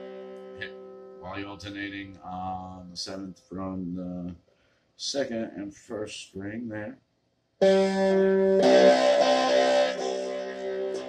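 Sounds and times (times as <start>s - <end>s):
guitar notes picked: 7.6s - 11.0s.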